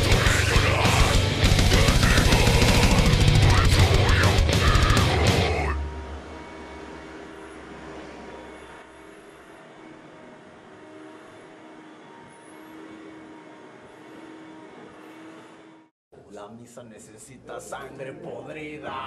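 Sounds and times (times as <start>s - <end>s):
shop vacuum running: 0.0s - 15.9s.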